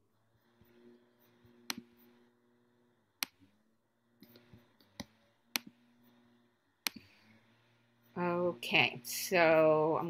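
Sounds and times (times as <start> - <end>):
faint steady hum: 0.0 - 10.0
computer mouse clicks: 1.6 - 2.1, 3.2 - 3.5, 4.2 - 5.8, 6.8 - 7.1.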